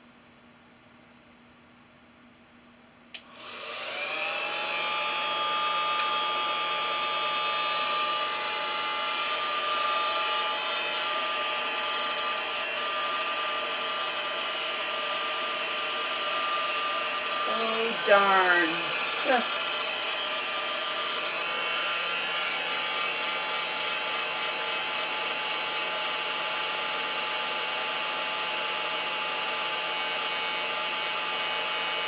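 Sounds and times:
hair dryer switch click: 0:03.1 - 0:03.3, 0:06.0 - 0:06.2
hair dryer motor whine: 0:03.2 - 0:32.0.

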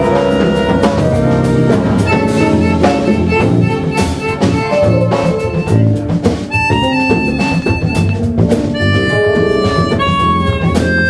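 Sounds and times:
harmonica melody: 0:00.0 - 0:11.0
jazz band playing: 0:00.0 - 0:11.0.

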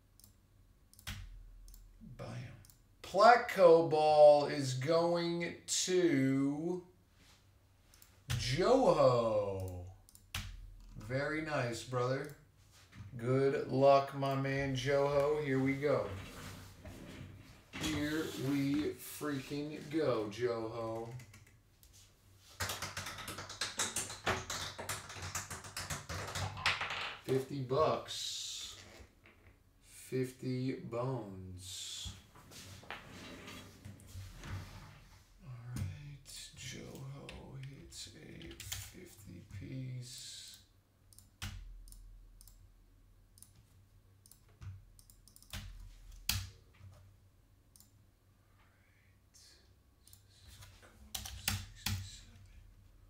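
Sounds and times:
sharp clicks and taps: 0:22.6 - 0:26.7.

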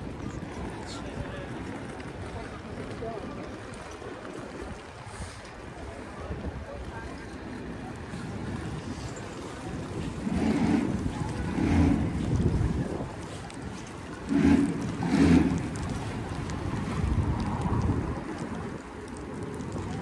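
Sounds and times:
steady outdoor noise: 0:00.0 - 0:20.0
wind buffeting microphone: 0:00.0 - 0:20.0.

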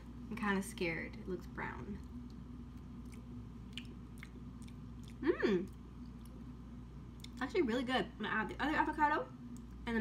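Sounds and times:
low room hum: 0:00.0 - 0:10.0
mouth and lip clicks: 0:02.2 - 0:06.4.

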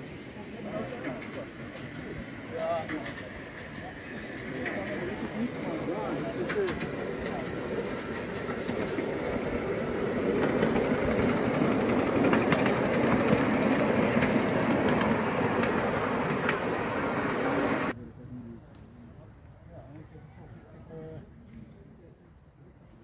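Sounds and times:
miniature steam locomotive running: 0:00.0 - 0:18.0.

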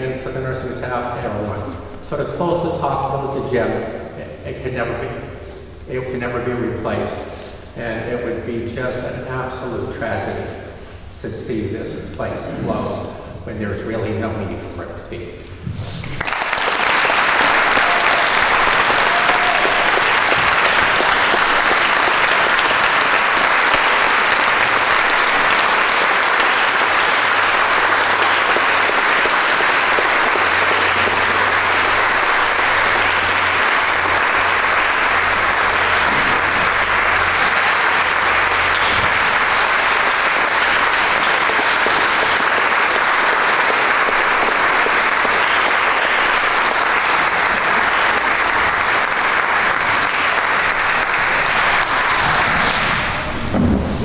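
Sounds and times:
loud sustained applause: 0:16.0 - 0:54.0.

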